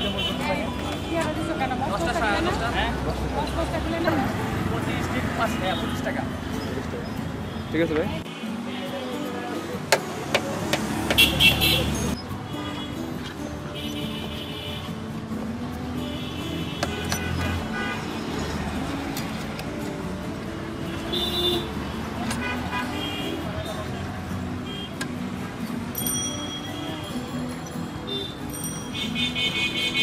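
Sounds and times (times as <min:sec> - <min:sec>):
hubbub of voices: 0:00.0 - 0:12.7
road traffic: 0:00.0 - 0:30.0.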